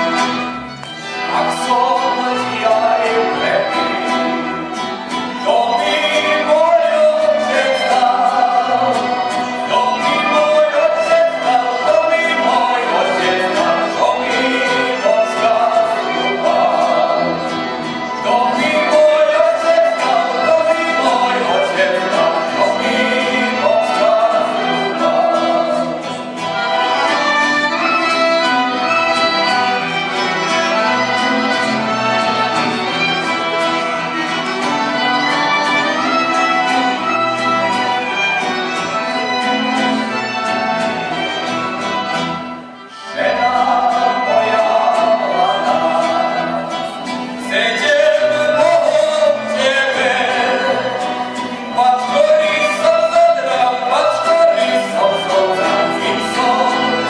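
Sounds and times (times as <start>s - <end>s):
violin: 0.0s - 57.0s
man singing into microphone: 1.2s - 4.4s, 5.4s - 17.5s, 18.2s - 26.0s, 43.1s - 57.0s.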